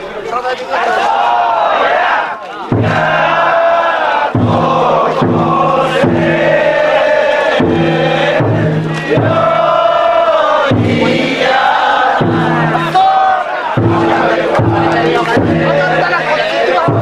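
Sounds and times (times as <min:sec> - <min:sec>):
people chanting in unison: 0:00.5 - 0:17.0
deep drum beats: 0:01.2 - 0:17.0.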